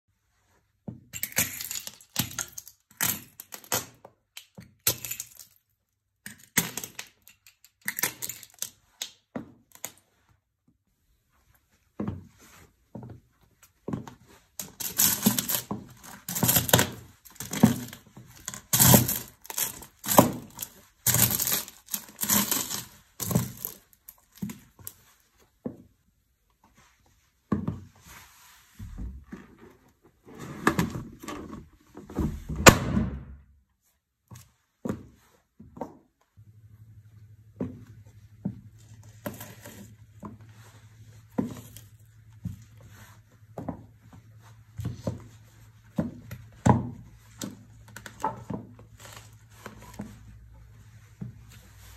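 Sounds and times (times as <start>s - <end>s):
shoes crunching popcorn: 16.4s - 23.9s
brittle pieces cracking underfoot: 17.4s - 24.2s.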